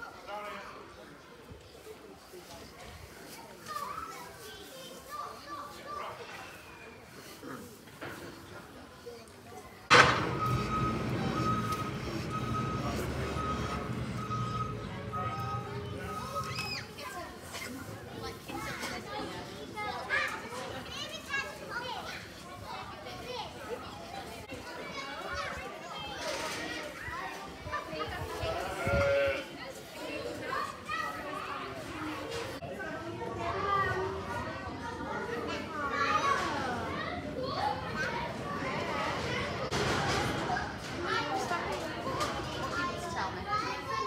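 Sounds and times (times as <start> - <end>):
hubbub of children's voices: 0.0 - 44.0
children's high calls and shouts: 9.9 - 17.4, 33.4 - 39.7.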